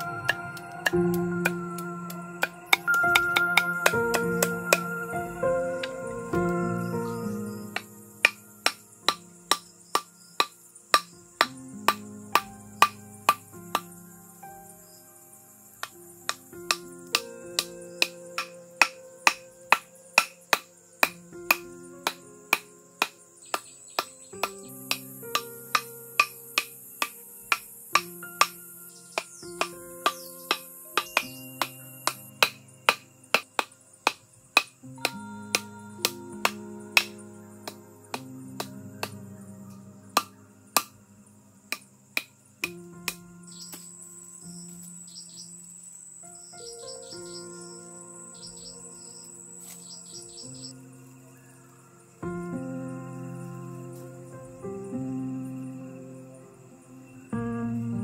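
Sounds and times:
bamboo mallet knocking on stakes: 0.0 - 4.9, 7.8 - 13.9, 15.8 - 28.6, 29.2 - 39.2, 41.7 - 43.9
soft background music: 0.0 - 58.0.

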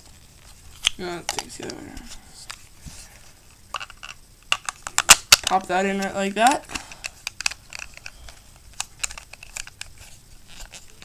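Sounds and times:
plastic parts clicking together: 3.7 - 11.0.

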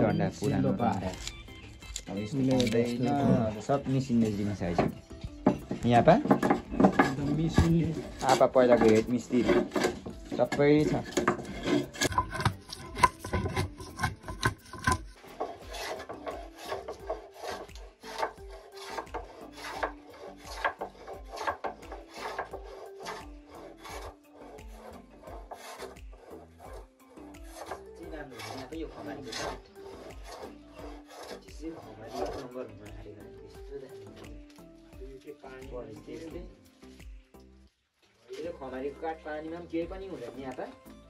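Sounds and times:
hand plane shaving wood: 0.0 - 33.3.

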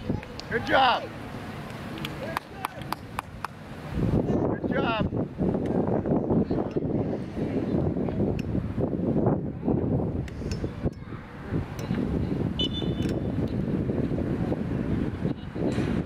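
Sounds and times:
wind buffeting microphone: 0.0 - 1.0, 2.2 - 16.0.

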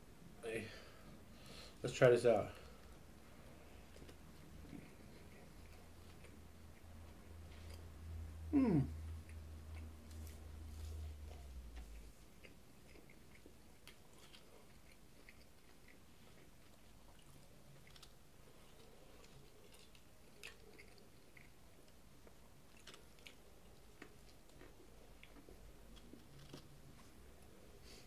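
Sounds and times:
person chewing food: 2.6 - 8.0, 9.0 - 28.0.

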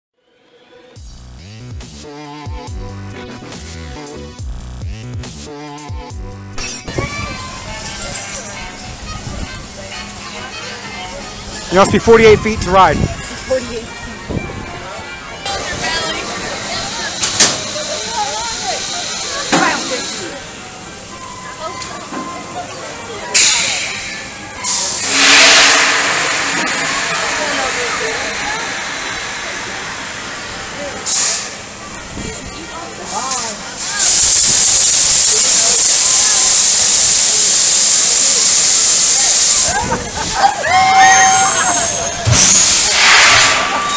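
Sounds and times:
people's voices: 6.8 - 43.9
compressed air hissing: 23.4 - 31.9, 33.0 - 39.9, 42.4 - 43.7
rush of air: 42.4 - 43.8.

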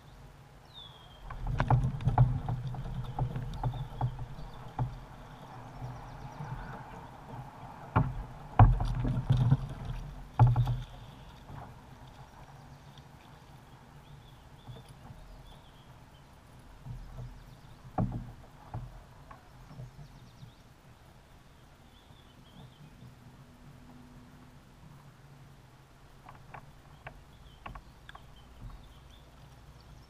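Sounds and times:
thumps and knocks on plastic kayak: 1.2 - 11.8, 16.7 - 20.2, 26.2 - 29.1.

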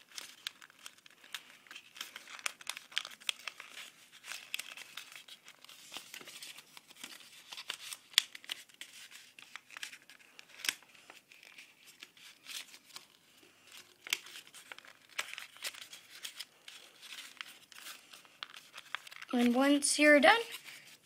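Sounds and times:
paper crinkling and crackling: 0.0 - 21.0.

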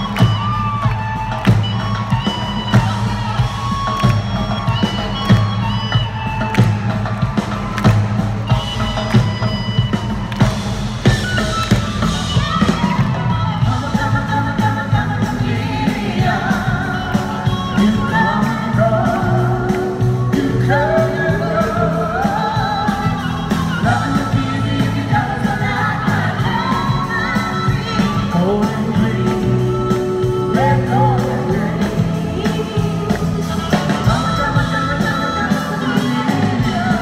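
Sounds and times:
live rock-pop band: 0.0 - 37.0
lead vocalist singing with vibrato: 12.1 - 37.0.

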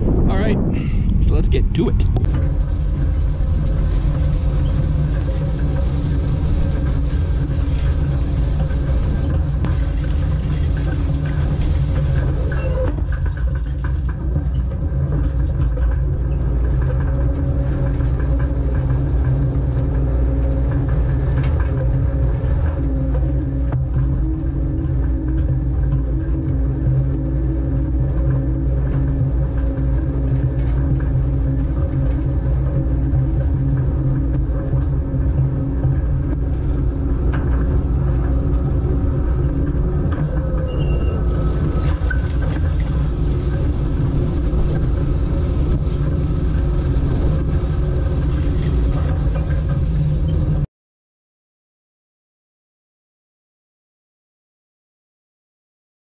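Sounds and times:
tractor engine running: 0.0 - 50.7.

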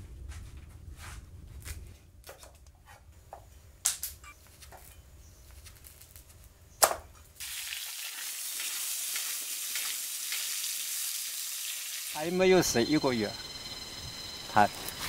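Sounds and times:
food sizzling in hot oil: 7.4 - 13.0.

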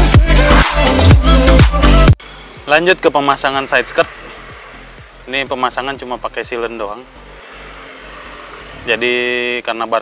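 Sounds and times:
distant traffic rushing: 2.2 - 10.0
man talking: 2.6 - 4.2, 5.3 - 7.1, 8.8 - 10.0.

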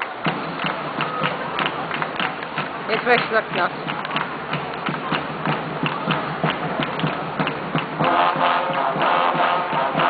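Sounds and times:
raindrops tapping: 0.0 - 10.0.

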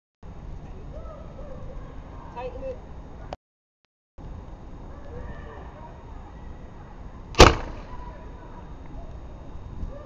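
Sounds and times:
potato cannon bang: 7.4 - 8.0.

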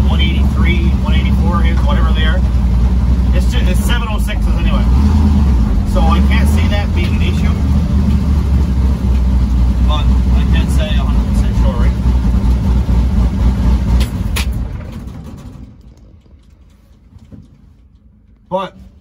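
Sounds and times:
pickup truck engine rumbling: 0.0 - 19.0.

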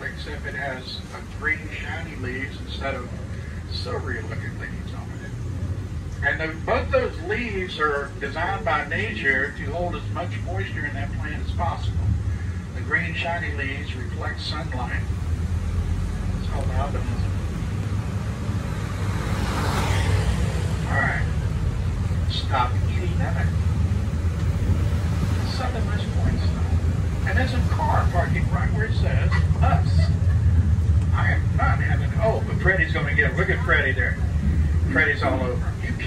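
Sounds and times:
people's voices: 0.0 - 18.2, 19.9 - 36.0
bus engine humming: 0.0 - 36.0.

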